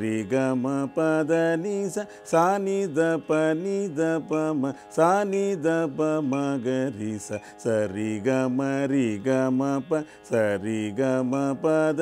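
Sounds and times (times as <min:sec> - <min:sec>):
breath: 0:10.0 - 0:10.3.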